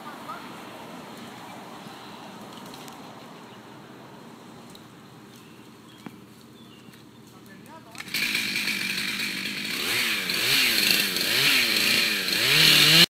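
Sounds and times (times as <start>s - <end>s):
chainsaw cutting: 7.9s - 13.0s.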